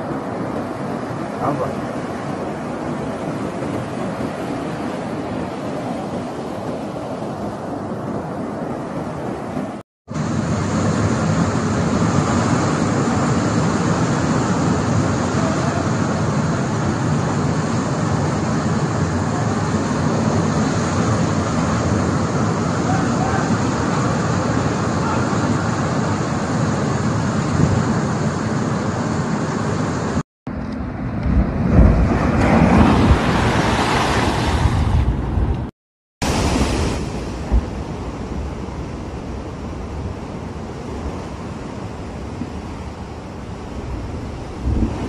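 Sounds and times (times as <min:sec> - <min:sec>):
wave crashing against seawall: 0:00.0 - 0:29.8, 0:31.1 - 0:35.5, 0:36.2 - 0:45.0
surf roaring: 0:00.0 - 0:45.0
wind: 0:00.0 - 0:45.0.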